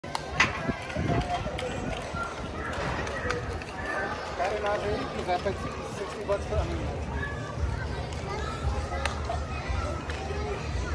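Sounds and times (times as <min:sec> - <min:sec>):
people talking: 0:00.0 - 0:10.9.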